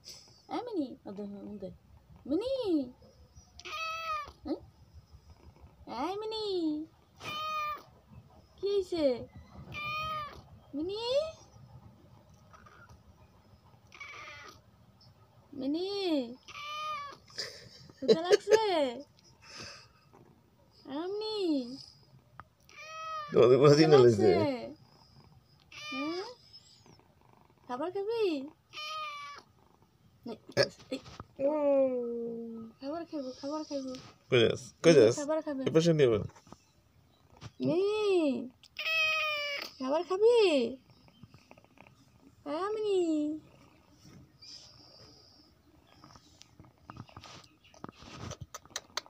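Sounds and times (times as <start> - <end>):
cat meowing: 3.6 - 4.4, 7.2 - 8.0, 9.7 - 10.5, 13.9 - 14.6, 16.4 - 17.3, 22.6 - 24.5, 25.7 - 26.4, 28.7 - 29.5, 38.7 - 39.8.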